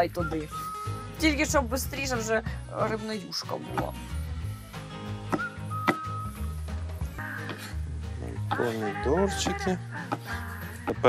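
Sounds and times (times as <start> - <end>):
held whistle-like tone: 0.0 - 1.4, 5.3 - 6.8
background music with bass: 0.0 - 11.0.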